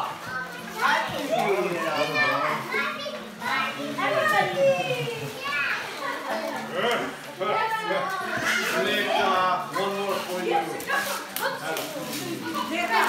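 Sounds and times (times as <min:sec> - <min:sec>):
children talking and calling out: 0:00.0 - 0:13.0.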